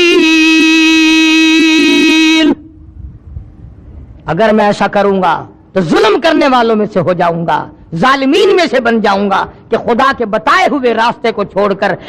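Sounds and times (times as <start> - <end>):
man chanting: 0.0 - 2.7.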